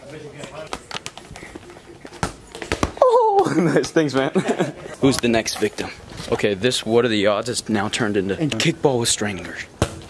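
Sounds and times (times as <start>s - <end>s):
soccer ball bouncing on hard floor: 2.2s - 3.0s.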